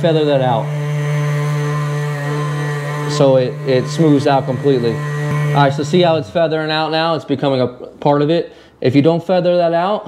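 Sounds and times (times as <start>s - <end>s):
orbital sander humming: 0.0s - 7.2s.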